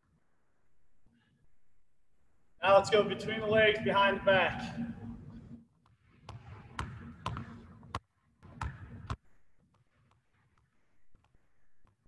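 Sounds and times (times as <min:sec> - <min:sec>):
basketball bouncing: 0:06.2 - 0:12.0.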